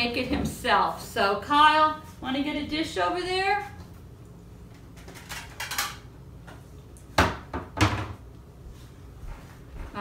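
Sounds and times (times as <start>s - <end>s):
dishes clattering: 5.0s - 6.1s.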